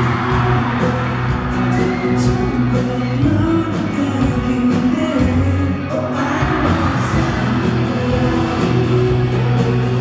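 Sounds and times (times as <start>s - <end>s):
audience screaming and cheering: 0.0s - 10.0s
live pop band playing: 0.0s - 10.0s
person singing: 0.0s - 10.0s.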